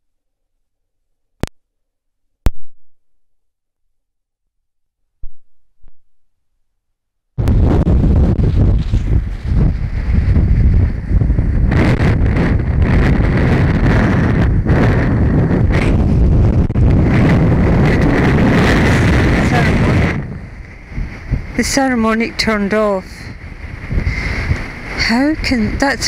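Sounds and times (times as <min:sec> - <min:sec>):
wind buffeting microphone: 0:07.4 - 0:26.0.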